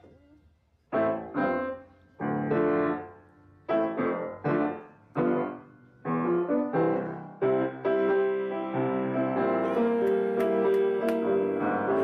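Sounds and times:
piano chords: 0.9s - 12.0s.

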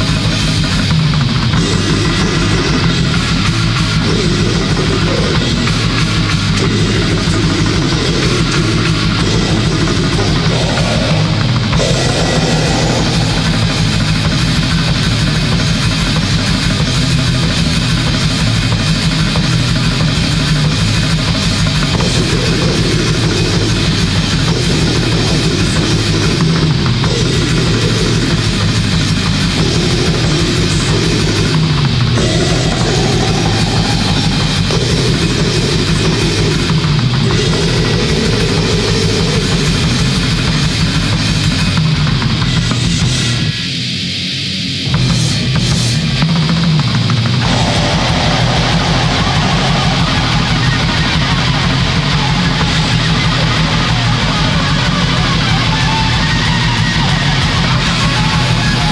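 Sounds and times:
fast dense drumming: 0.0s - 43.5s, 44.9s - 58.9s
distorted guitar and bass riffing: 0.0s - 58.9s.

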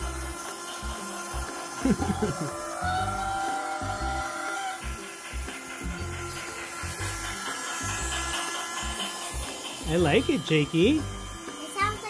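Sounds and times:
toy train motor whine: 0.0s - 12.0s.

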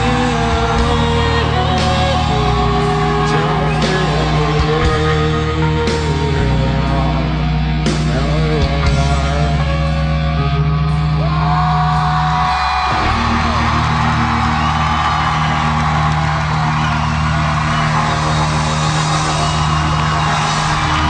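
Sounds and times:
live rock band: 0.0s - 21.0s
audience shouts and whoops: 11.0s - 21.0s.

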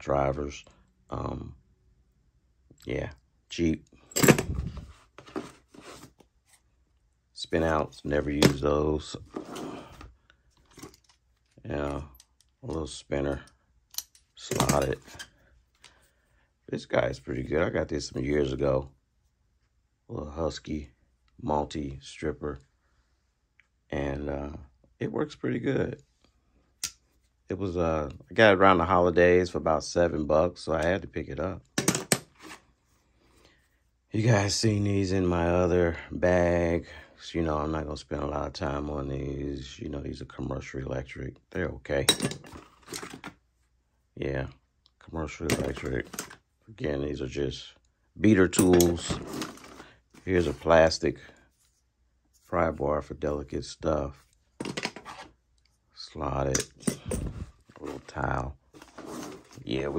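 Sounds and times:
metal driver bits clinking: 4.1s - 4.6s, 13.4s - 15.3s, 42.1s - 43.2s
rustling in a fabric tool bag: 4.2s - 6.6s, 48.9s - 50.7s, 56.9s - 59.9s.

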